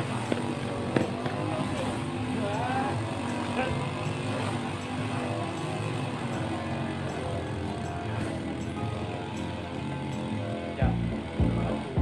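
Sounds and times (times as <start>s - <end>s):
lawn mower engine running: 0.0s - 12.0s.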